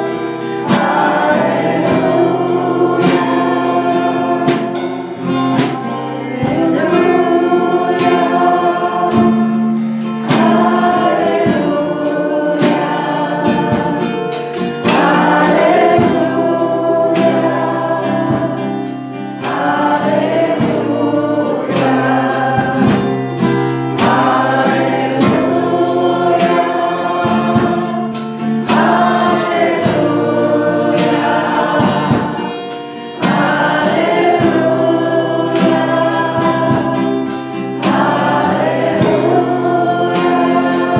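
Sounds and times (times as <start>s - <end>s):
steady beat: 0.0s - 37.1s
congregation singing: 0.0s - 40.9s
strummed acoustic guitar: 0.0s - 40.9s.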